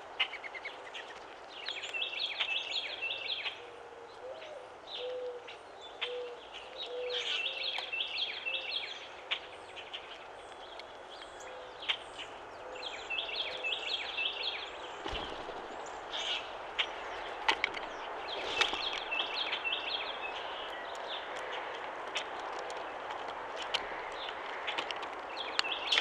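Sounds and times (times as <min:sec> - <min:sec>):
low cooing bird call: 0:03.0 - 0:09.0.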